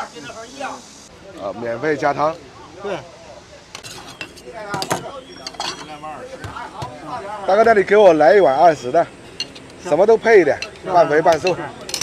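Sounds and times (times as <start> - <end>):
ceramic bowls and ladle clinking: 3.8 - 6.2, 9.2 - 9.8, 10.5 - 12.0.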